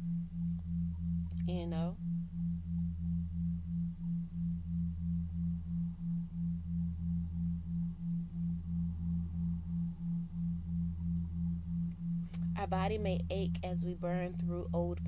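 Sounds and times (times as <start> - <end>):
deep electronic tone: 0.0 - 15.0
pulsing electronic hum: 0.0 - 15.0.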